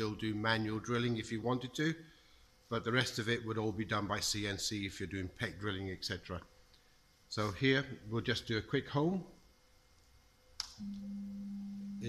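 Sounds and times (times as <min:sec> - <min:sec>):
click: 0:10.0 - 0:11.1.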